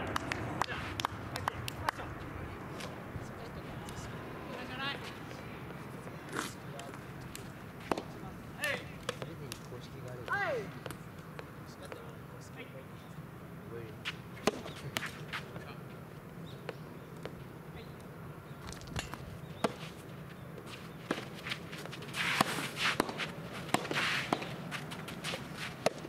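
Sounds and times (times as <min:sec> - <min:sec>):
shoes scuffing on court: 0:14.0 - 0:15.7, 0:19.0 - 0:26.0.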